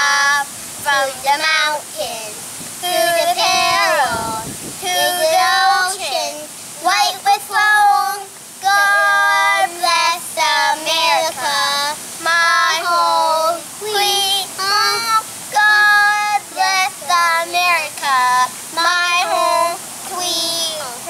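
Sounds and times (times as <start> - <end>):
boys singing: 0.0 - 21.0.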